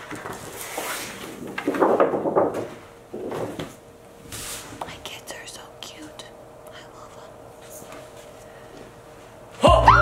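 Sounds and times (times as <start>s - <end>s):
person whispering: 4.9s - 7.8s.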